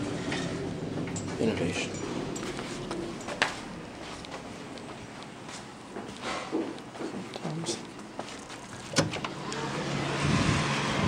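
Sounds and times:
vehicle traffic hum: 8.5 - 11.0.

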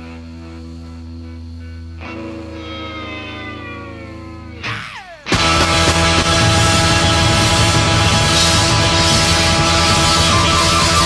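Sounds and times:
electric guitar sustained notes: 0.0 - 11.0
held bass note: 2.1 - 11.0.

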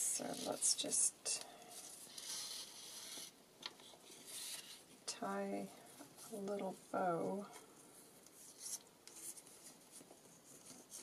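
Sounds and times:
thread rustling against paper card: 0.0 - 11.0.

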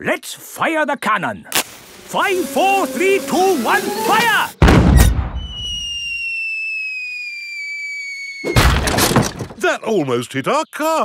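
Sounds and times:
cannonball whistling falling pitch: 4.6 - 8.8.

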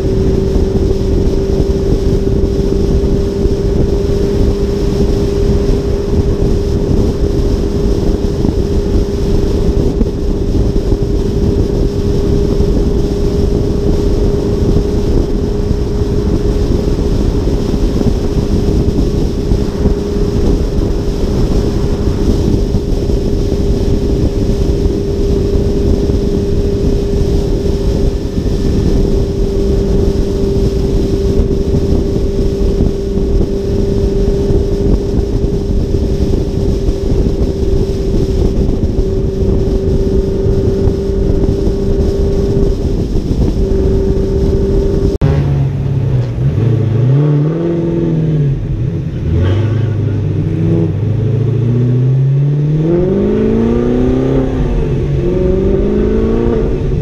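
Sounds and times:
car road noise: 0.0 - 57.0
constant drone: 0.0 - 57.0
wind noise on camera: 0.0 - 57.0.

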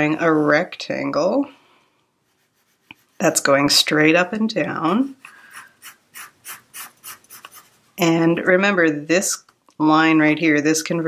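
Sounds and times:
pencil scratching on paper: 2.2 - 3.5, 5.1 - 8.0.

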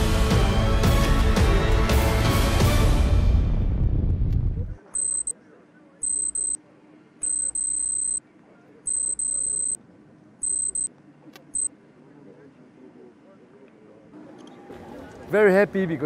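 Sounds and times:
music: 0.0 - 4.2
high-pitched electronic beeps: 5.0 - 5.3, 6.0 - 6.6, 7.2 - 8.2, 8.9 - 9.8, 10.4 - 10.9.

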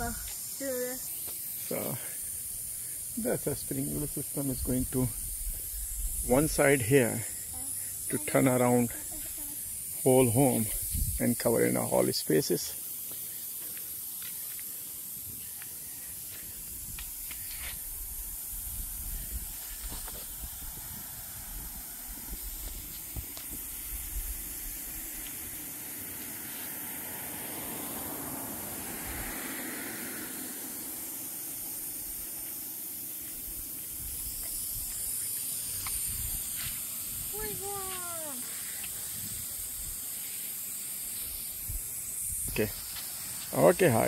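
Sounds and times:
lawn sprinkler spraying water: 0.0 - 44.0.

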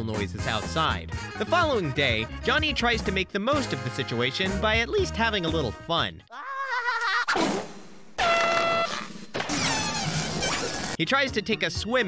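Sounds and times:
air horn blast: 8.2 - 8.9.

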